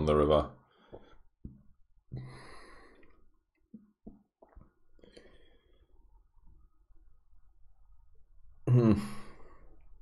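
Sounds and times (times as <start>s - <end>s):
man sighing: 8.6s - 9.6s.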